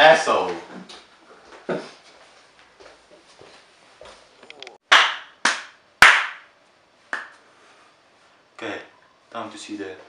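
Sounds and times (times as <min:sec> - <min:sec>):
sharp hand smacks: 0:07.1 - 0:07.4.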